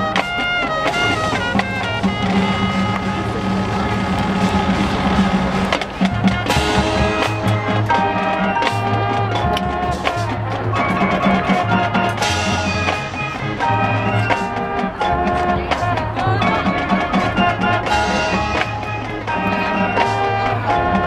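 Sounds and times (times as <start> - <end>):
drum hits: 0.0 - 10.7
marching band playing: 0.0 - 21.0.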